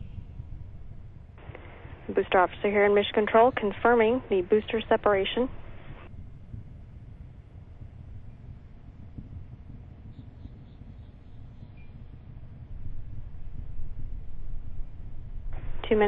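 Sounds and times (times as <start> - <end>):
distant rocket launch rumble: 0.0 - 16.0.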